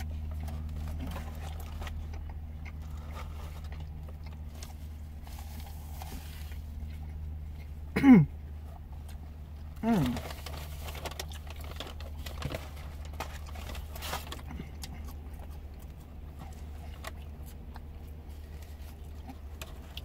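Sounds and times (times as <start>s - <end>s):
person chewing: 0.0s - 20.0s
steady low hum: 0.0s - 20.0s.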